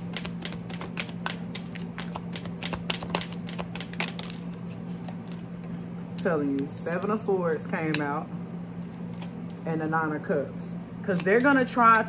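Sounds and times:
cards clicking and tapping: 0.0 - 5.4.

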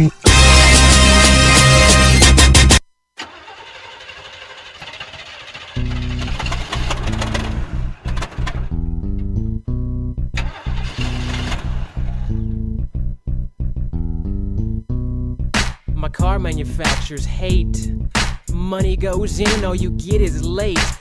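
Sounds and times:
song with stepping bass line: 0.0 - 2.8, 8.7 - 10.4, 12.2 - 21.0
car engine cranking and sputtering: 2.2 - 9.3, 10.3 - 12.7.

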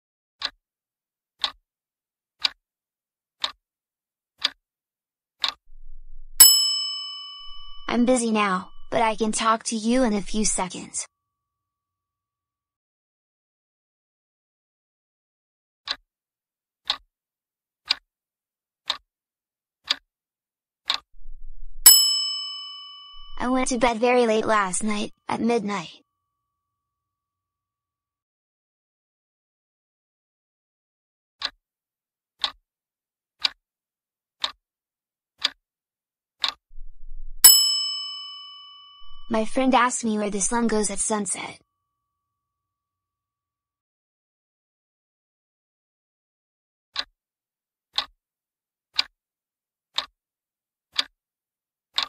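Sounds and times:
clock ticks: 1.4 - 1.6, 3.4 - 3.6, 4.4 - 4.6, 5.4 - 10.7, 16.8 - 17.0, 20.9 - 25.5, 36.4 - 36.6, 37.4 - 41.2
bright bell chime: 6.4 - 8.0, 21.9 - 23.8, 37.5 - 39.4.

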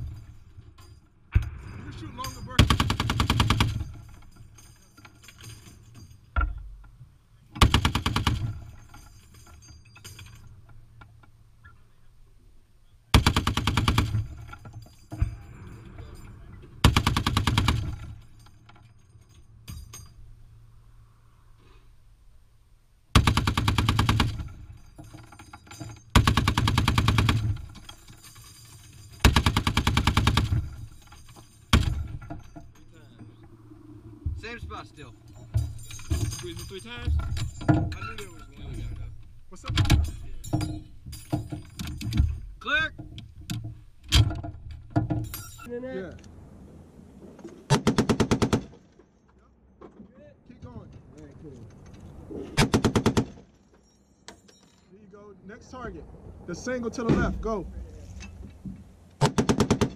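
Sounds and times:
heavy machine gun bursts: 2.6 - 4.2, 7.6 - 9.1, 13.1 - 14.6, 16.8 - 18.2, 23.2 - 24.8, 26.1 - 28.1, 28.7 - 32.3, 47.7 - 48.8, 52.6 - 53.5, 59.2 - 59.9.

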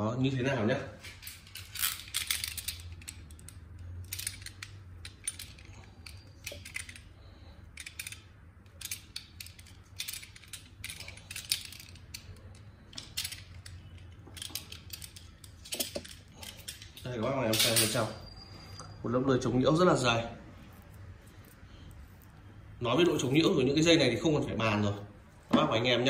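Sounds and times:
low steady hum: 0.0 - 26.0.

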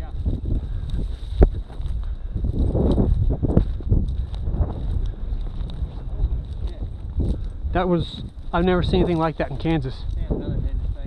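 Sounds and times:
footsteps: 0.0 - 11.0
wind buffeting microphone: 0.0 - 11.0.

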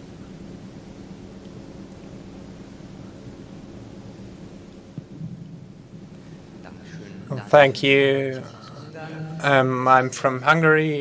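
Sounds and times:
microphone handling rumble: 4.9 - 8.8
hall room tone: 5.0 - 11.0.

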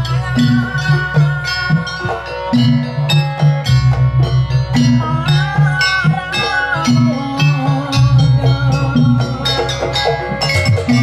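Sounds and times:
gamelan metallophones ringing: 0.0 - 11.0
wavering melody line: 0.0 - 11.0.

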